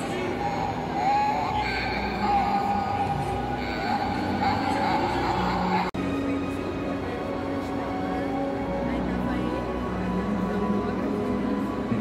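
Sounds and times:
recorded voice from small speaker: 0.0 - 6.0
crowd noise: 0.0 - 12.0.

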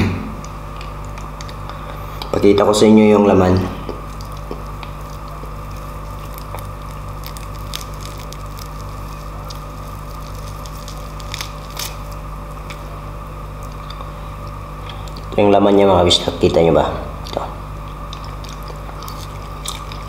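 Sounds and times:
background hum: 0.0 - 20.0
hands tearing roast meat: 3.8 - 15.4, 17.2 - 20.0.

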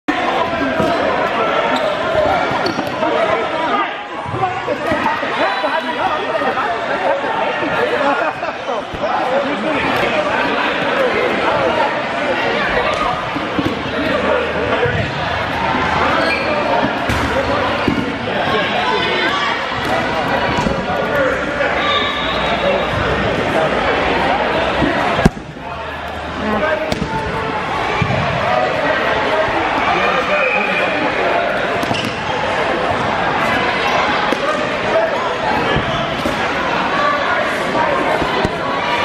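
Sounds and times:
players calling out: 0.2 - 39.0
dodgeballs smacking: 0.7 - 1.1, 4.2 - 5.3, 8.8 - 9.2, 12.8 - 15.2, 16.7 - 21.3, 24.7 - 26.2, 26.8 - 28.4, 31.7 - 34.9, 35.5 - 36.8, 38.0 - 38.8.

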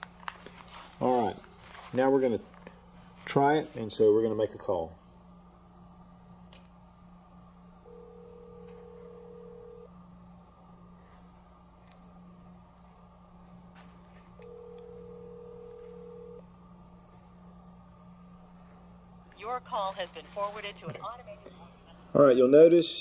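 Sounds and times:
low steady hum: 0.0 - 23.0
telephone ringback tone: 7.9 - 9.9, 14.4 - 16.4.

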